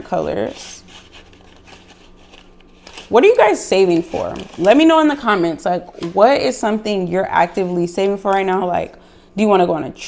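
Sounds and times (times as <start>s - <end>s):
wooden pencils rubbing and clicking: 0.0s - 5.1s.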